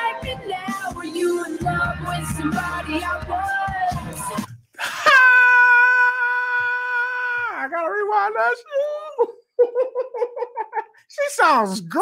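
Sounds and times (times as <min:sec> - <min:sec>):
high giggling laughter: 0:09.2 - 0:11.0.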